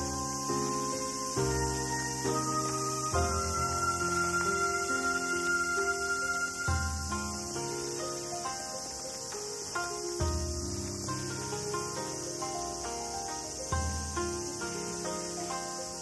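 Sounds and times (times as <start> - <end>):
gentle background music: 0.0 - 16.0
insect chorus: 0.0 - 16.0.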